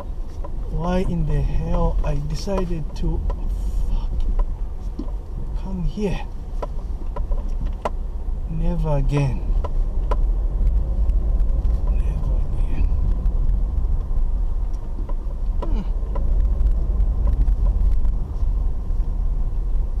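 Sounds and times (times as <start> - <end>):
knocks and rattles over bumps: 0.0 - 8.1, 9.0 - 19.3
car rumbling on dirt road: 0.0 - 20.0.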